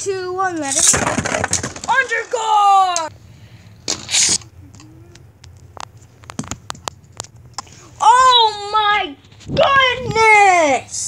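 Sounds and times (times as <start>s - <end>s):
short hiss: 3.9s - 4.4s.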